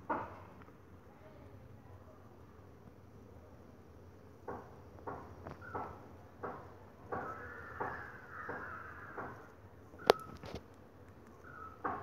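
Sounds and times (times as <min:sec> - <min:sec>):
crow cawing: 0:07.1 - 0:09.5.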